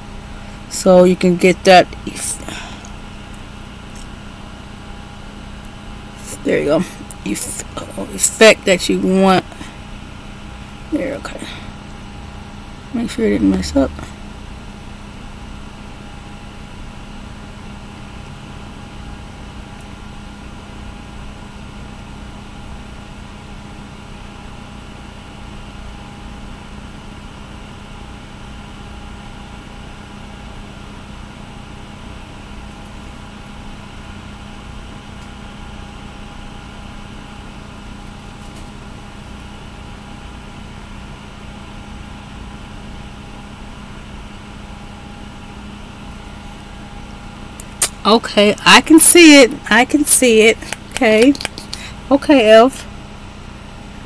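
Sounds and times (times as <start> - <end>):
machine hum: 0.0 - 26.3, 28.0 - 54.0.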